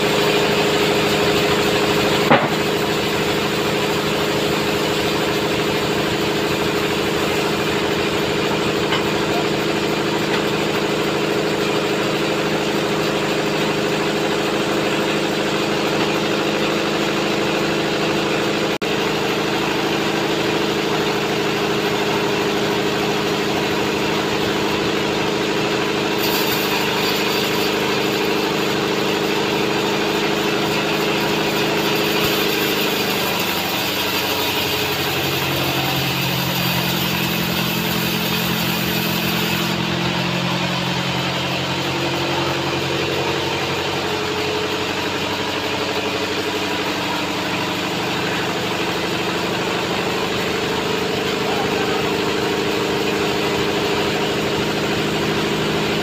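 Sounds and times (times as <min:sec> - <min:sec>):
band saw cutting log: 0:00.0 - 0:56.0.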